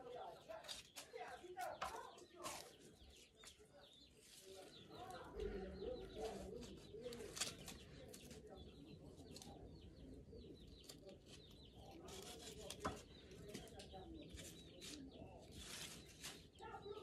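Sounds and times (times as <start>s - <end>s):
leaves rustling and light clicks: 0.2s - 9.7s, 10.6s - 17.0s.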